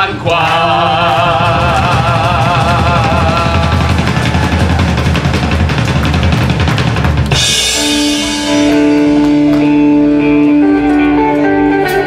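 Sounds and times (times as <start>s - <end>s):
live rock band playing: 1.5s - 12.0s.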